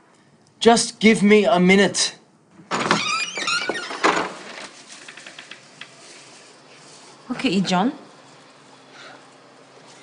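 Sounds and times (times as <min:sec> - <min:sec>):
door squeak: 0:02.7 - 0:04.5.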